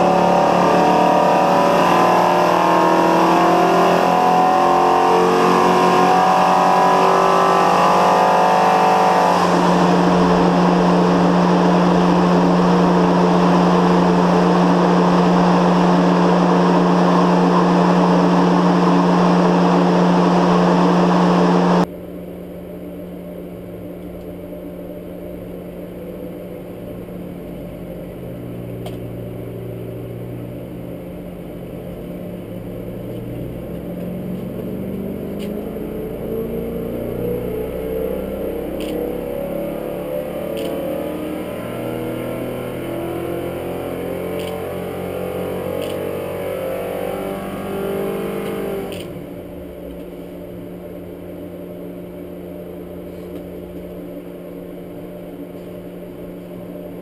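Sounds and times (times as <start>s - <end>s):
engine running on dyno: 0.0s - 57.0s.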